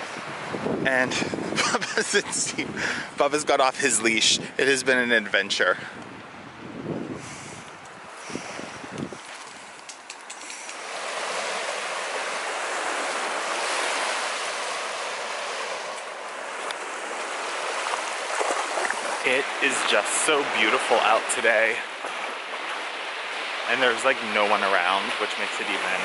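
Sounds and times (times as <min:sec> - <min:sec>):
wind rumble on microphone: 0:00.0 - 0:04.6, 0:05.7 - 0:15.8
small waves lapping on shore: 0:07.0 - 0:26.0.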